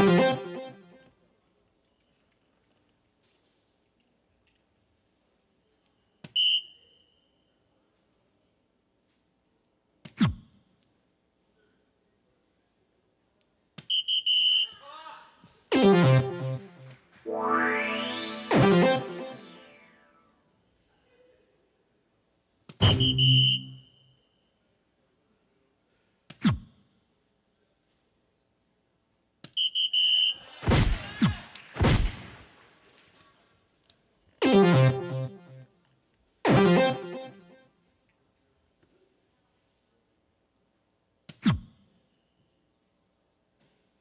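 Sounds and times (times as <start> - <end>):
falling pitch electronic sound effect: 0.0 - 0.9, 15.7 - 20.1, 22.8 - 23.8, 34.4 - 35.6, 36.5 - 37.6
high electronic beeps: 15.7 - 20.0, 22.8 - 23.9, 34.4 - 35.6, 36.5 - 37.5
falling chime: 17.3 - 19.9.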